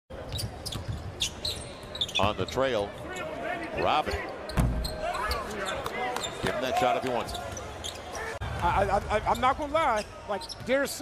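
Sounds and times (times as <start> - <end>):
arena crowd noise: 0.1 - 11.0
sneaker squeaks: 0.2 - 2.8, 4.1 - 6.6, 7.2 - 8.4, 9.3 - 11.0.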